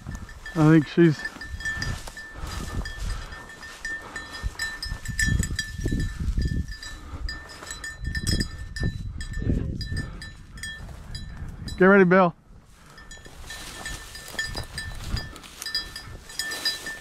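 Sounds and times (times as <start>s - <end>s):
footsteps through dry grass: 0.0s - 9.1s, 9.8s - 11.7s, 12.4s - 17.0s
small bell jingling: 0.0s - 12.1s, 12.9s - 17.0s.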